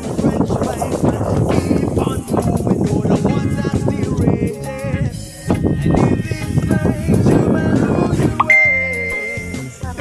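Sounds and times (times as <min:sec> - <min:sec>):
background music: 0:03.0 - 0:10.0
short gliding pitched notes: 0:08.4 - 0:09.7
held high note: 0:08.4 - 0:09.8.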